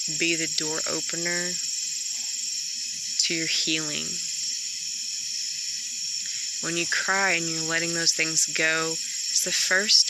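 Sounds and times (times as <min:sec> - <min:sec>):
night insects chorus: 0:00.0 - 0:10.0.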